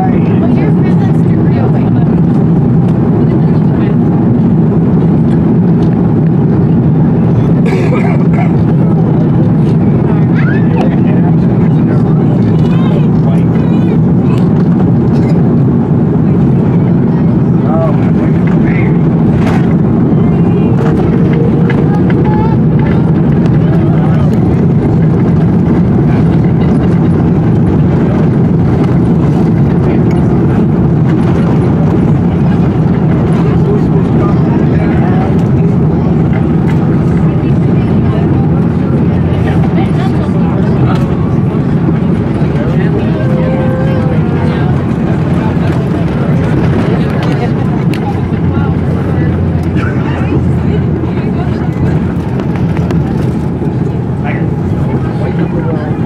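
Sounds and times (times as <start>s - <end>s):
aircraft cabin low rumble: 0.0s - 56.0s.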